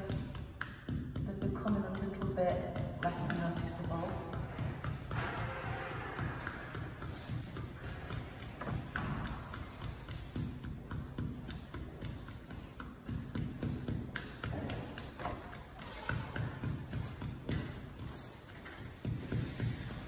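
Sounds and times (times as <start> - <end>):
brush dabbing on wall: 0.0 - 20.0.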